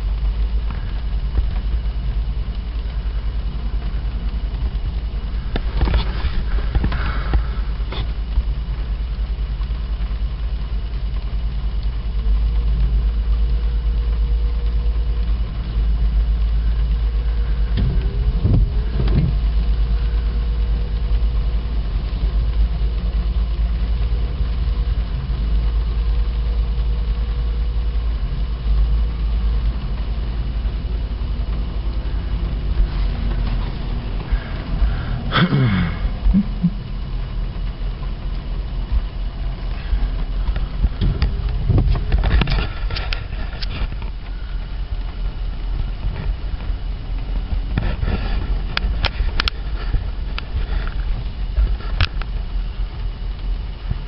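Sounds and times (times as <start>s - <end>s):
car engine idling: 0.0s - 54.0s
windshield wiper sweeping: 0.0s - 54.0s.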